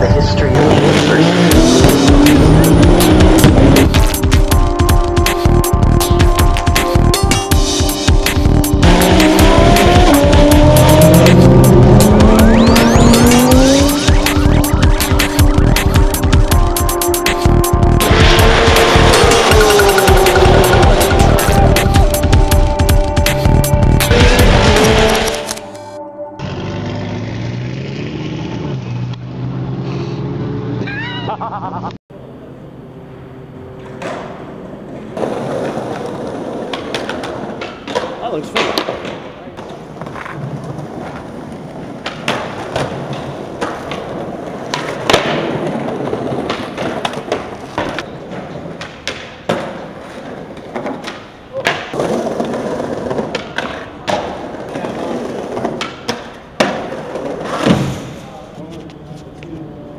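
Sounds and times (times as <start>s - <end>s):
skateboard wheels rolling on pavement: 32.9s - 59.9s
skateboard clacks and landings: 33.8s - 58.3s.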